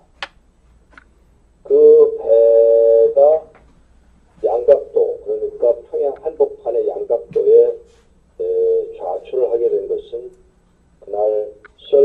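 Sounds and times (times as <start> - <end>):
man speaking into a microphone: 1.7 - 3.6, 4.4 - 10.4, 11.0 - 12.0.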